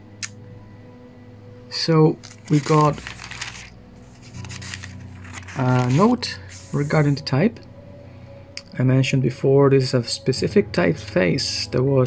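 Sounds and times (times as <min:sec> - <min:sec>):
thin pages being turned: 0:02.2 - 0:07.2.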